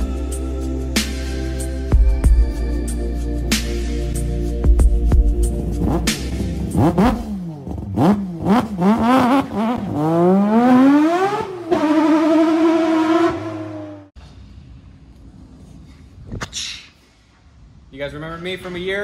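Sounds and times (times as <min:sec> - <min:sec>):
music: 0:00.0 - 0:07.4
car engine revving: 0:05.5 - 0:14.2.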